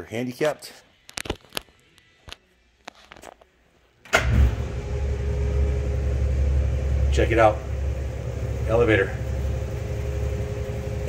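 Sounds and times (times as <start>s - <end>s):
platform lift motor humming and whining: 4.1s - 11.0s.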